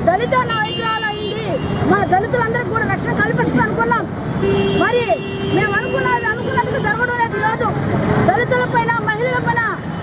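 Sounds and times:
woman speaking forcefully: 0:00.0 - 0:04.1, 0:04.7 - 0:10.0
road traffic: 0:00.0 - 0:10.0.

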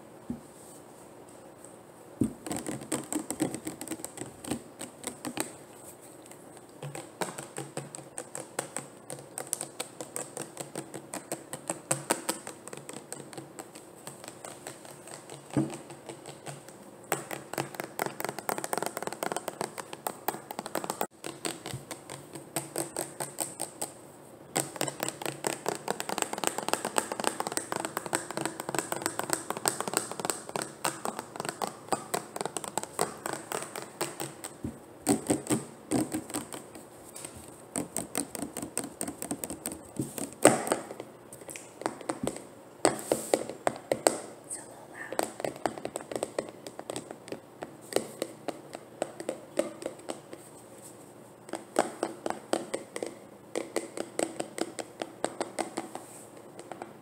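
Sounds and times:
finger tapping on plastic bottles: 0:02.2 - 0:05.6, 0:06.8 - 0:44.3, 0:45.1 - 0:50.5, 0:51.5 - 0:56.9.

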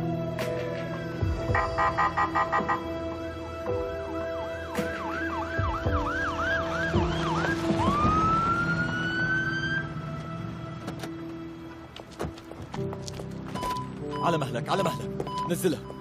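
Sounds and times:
ambulance siren: 0:01.5 - 0:03.0, 0:03.8 - 0:10.4.

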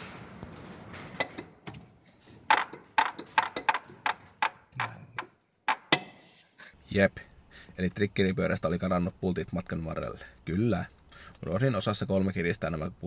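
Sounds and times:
metallic clicks and knocks: 0:02.5 - 0:06.2.

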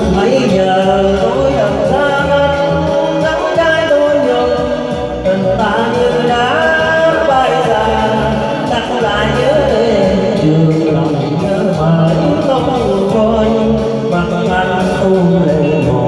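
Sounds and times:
backing band playing: 0:00.0 - 0:16.0
man singing into a microphone: 0:00.0 - 0:16.0.

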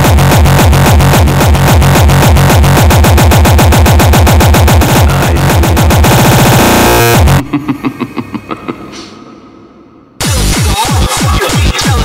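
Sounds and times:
frenchcore music with distorted kick: 0:00.0 - 0:07.7, 0:10.2 - 0:12.0.

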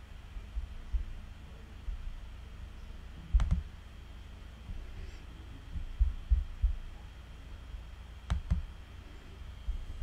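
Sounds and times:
faint low room rumble: 0:00.0 - 0:10.0.

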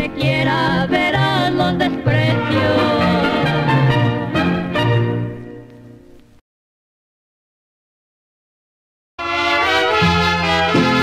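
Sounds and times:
trumpets playing melody: 0:02.4 - 0:05.6, 0:09.2 - 0:11.0
violins playing melody: 0:09.2 - 0:11.0.

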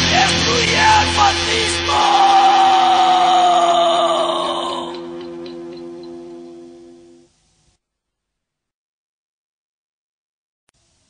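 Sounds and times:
held high guitar note: 0:00.0 - 0:07.3.

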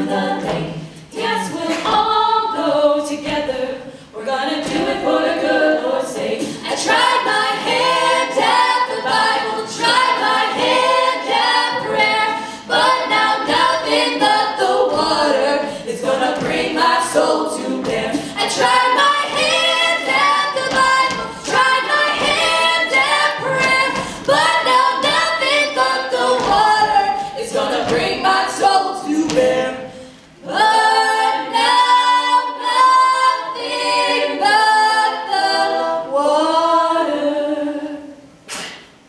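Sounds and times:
female a cappella group singing: 0:00.0 - 0:38.7
vocal percussion: 0:00.0 - 0:39.0.

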